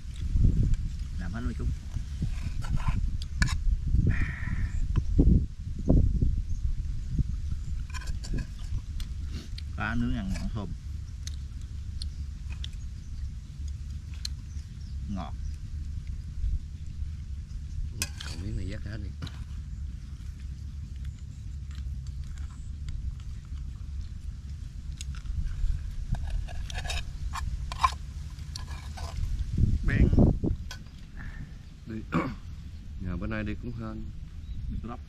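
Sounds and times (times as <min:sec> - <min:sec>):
wind rumble on microphone: 0:00.0 - 0:35.0
voices: 0:01.2 - 0:01.9, 0:09.3 - 0:10.8, 0:14.4 - 0:15.6, 0:16.8 - 0:20.0, 0:29.8 - 0:34.2.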